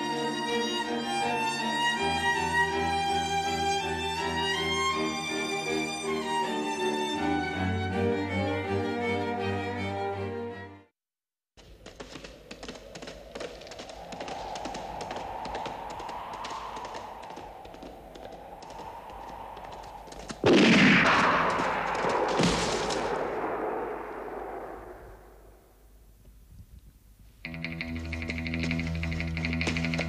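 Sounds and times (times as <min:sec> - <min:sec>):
crackling gunshots: 0:20.3 - 0:25.7
loud blast: 0:20.4 - 0:25.7.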